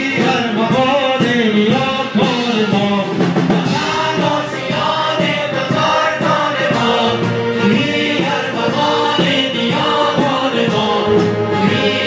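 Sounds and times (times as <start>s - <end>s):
choir singing: 0.0s - 12.0s
live band playing: 0.0s - 12.0s.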